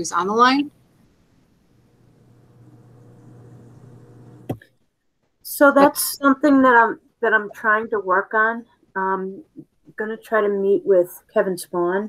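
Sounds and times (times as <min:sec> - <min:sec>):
faint low hum: 0:00.0 - 0:04.6.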